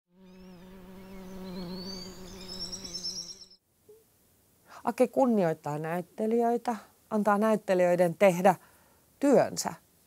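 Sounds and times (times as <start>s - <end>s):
bee buzzing: 0.2s - 3.6s
high chirping whistles: 1.2s - 3.6s.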